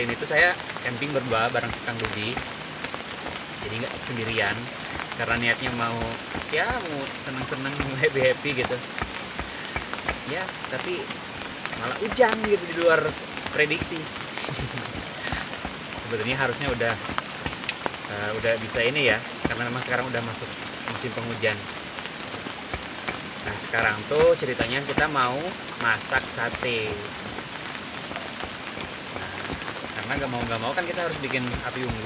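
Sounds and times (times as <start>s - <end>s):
drops ticking on a surface: 0.0s - 32.0s
rain falling: 0.0s - 32.0s.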